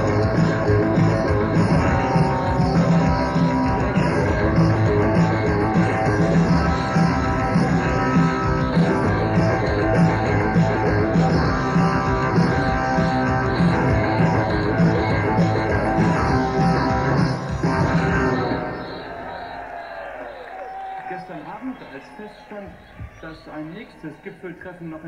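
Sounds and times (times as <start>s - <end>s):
live rock band playing: 0.0s - 19.4s.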